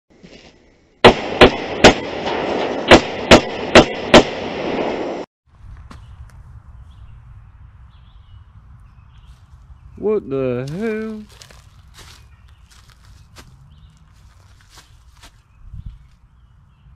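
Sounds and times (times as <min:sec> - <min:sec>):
quiet outdoor background: 0:00.1 - 0:16.9
gunshots: 0:01.0 - 0:05.3.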